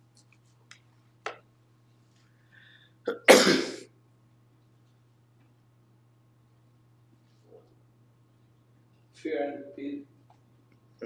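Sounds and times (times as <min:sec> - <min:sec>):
person coughing: 0:03.1 - 0:03.9.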